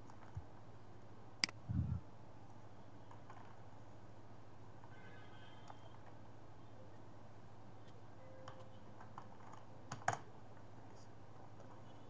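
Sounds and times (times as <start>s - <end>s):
typing on keyboard: 8.3s - 10.3s.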